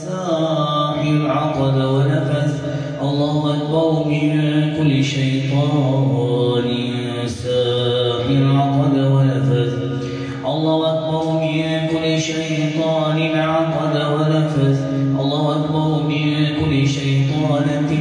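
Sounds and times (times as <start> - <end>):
man chanting verses: 0.0 - 18.0.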